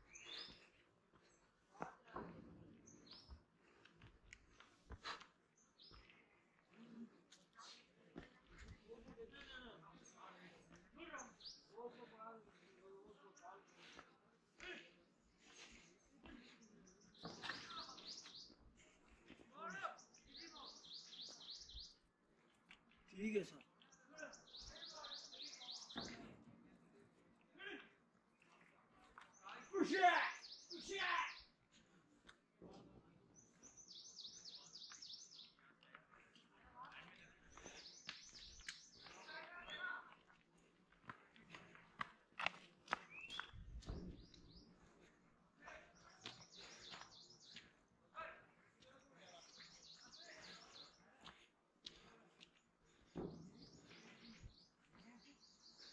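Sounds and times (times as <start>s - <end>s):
footsteps on dirt path: 0.1s - 19.6s, 33.4s - 48.0s, 48.6s - 55.9s
bird chirping: 16.6s - 18.7s, 19.9s - 22.1s, 23.8s - 26.2s, 30.3s - 31.5s, 33.4s - 35.6s, 37.3s - 39.9s, 43.0s - 45.1s, 46.0s - 47.8s, 48.8s - 51.4s, 53.3s - 55.9s.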